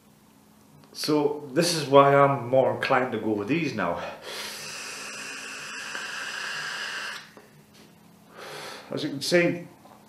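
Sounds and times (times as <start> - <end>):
air hissing through vape tank: 4.3 - 7.4.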